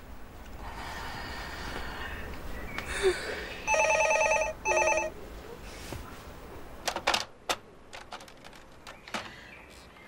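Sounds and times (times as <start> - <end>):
telephone ringing with warbling trill: 3.7 - 5.1.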